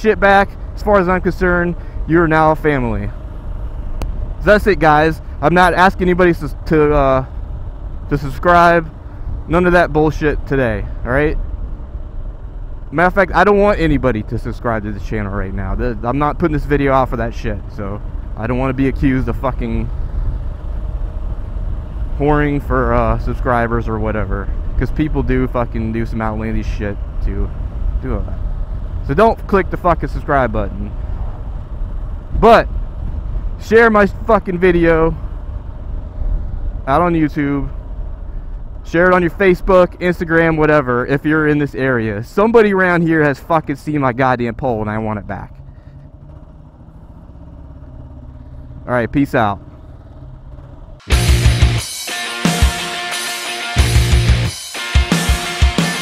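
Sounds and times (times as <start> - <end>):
motorcycle engine rumbling: 0.0 - 56.0.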